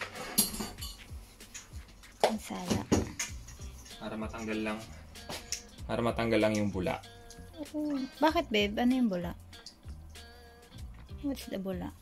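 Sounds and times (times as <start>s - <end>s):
metal kitchenware clinking: 0.0s - 1.8s, 2.6s - 5.8s
background music: 0.0s - 12.0s.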